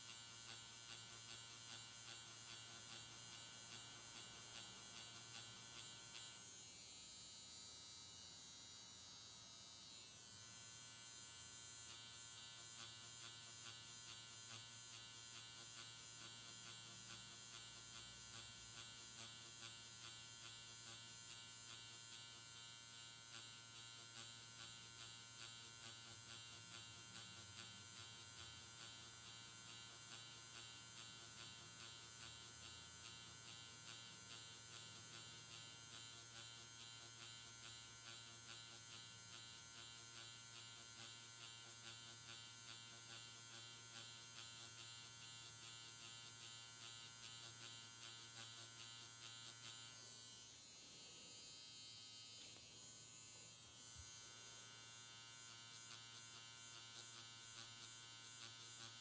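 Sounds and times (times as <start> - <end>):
faint steady electric buzz: 0.0 - 59.0.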